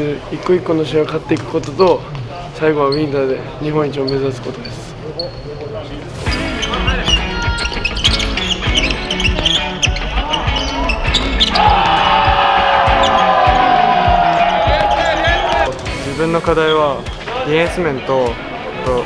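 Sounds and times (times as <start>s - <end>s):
background music: 6.0s - 19.0s.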